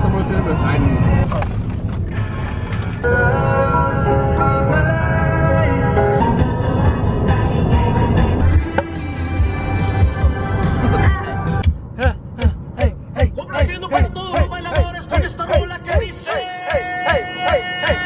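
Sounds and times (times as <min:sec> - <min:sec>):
pop music with heavy bass beat: 0:04.9 - 0:18.0.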